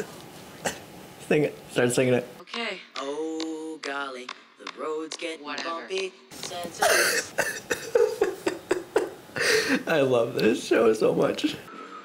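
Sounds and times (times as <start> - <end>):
man laughing hard: 6.8 - 9.9.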